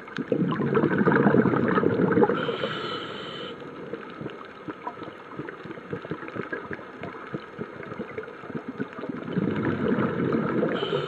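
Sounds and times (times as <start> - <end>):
underwater bubbling: 0.0 - 11.0
faint high whine: 10.8 - 11.0.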